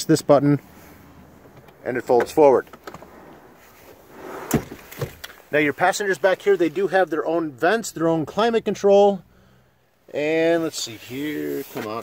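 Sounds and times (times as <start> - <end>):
seat thumping down: 1.4 - 5.4
car seat folding rustle: 1.4 - 5.5, 11.3 - 12.0.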